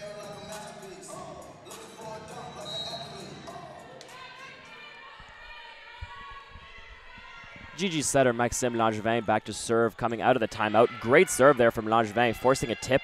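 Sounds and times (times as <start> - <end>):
music: 0.0 - 6.6.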